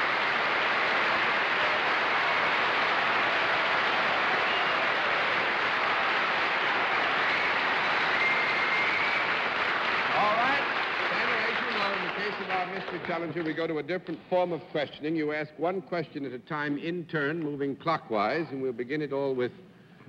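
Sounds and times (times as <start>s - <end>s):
audience applauding: 0.0s - 13.9s.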